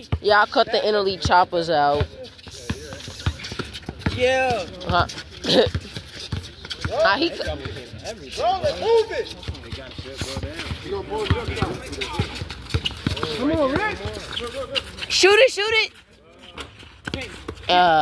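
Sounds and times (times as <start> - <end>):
people talking and calling out: 0.0 - 18.0
knocks and thuds from basketball play: 1.1 - 8.0, 9.4 - 14.7.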